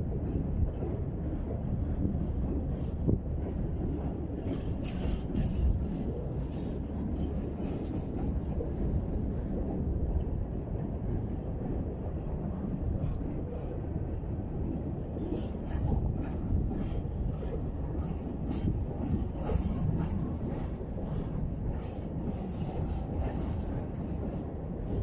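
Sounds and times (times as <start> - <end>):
steel wheels rumbling on rails: 0.0 - 25.0
clanks from wheels and couplings: 0.2 - 11.3, 14.6 - 25.0.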